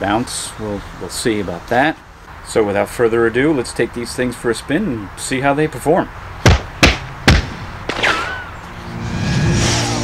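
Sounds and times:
sharp thuds: 6.4 - 8.5
background music: 8.7 - 10.0.

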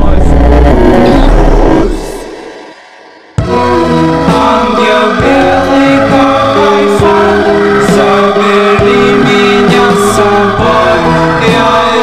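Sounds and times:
heavy low bass: 0.0 - 2.5
distorted harsh noise music: 0.0 - 12.0.

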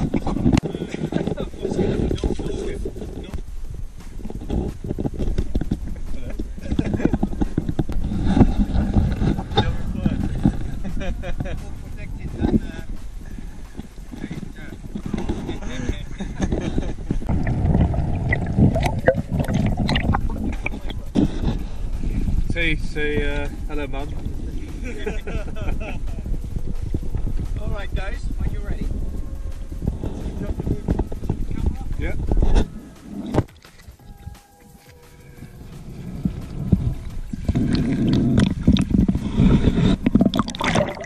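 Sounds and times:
muffled indistinct voices: 4.2 - 17.4, 20.1 - 37.7.

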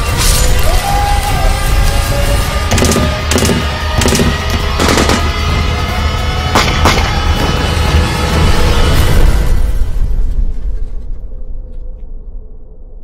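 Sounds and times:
dramatic music with low rumble: 0.0 - 13.0
sharp gunshots: 2.7 - 5.5.

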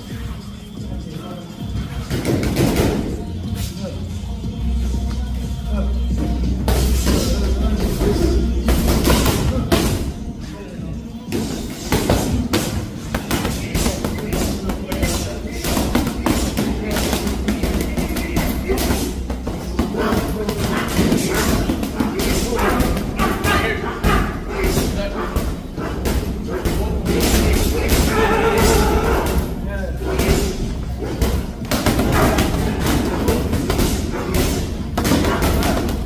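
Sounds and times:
background music with vocals: 0.0 - 36.0
boxing gloves striking mitts: 30.2 - 36.0.

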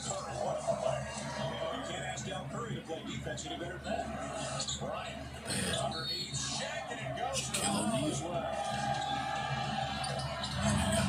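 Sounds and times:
televised basketball game audio: 0.0 - 11.0.

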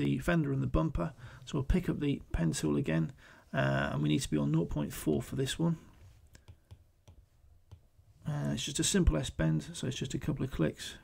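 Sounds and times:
stylus tapping glass screen: 6.4 - 7.9.

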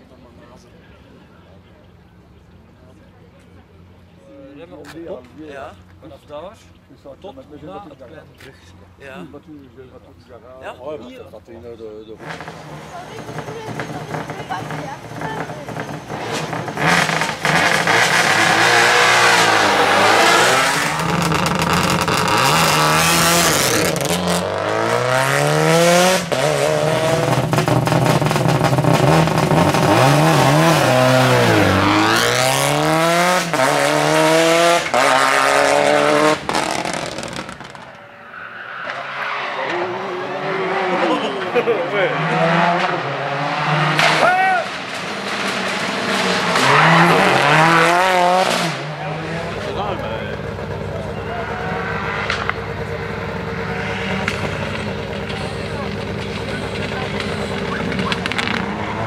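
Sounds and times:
sharp exhaust cracks: 12.2 - 25.1, 34.8 - 38.1, 44.7 - 59.0
rally car engine revving: 12.2 - 59.0.

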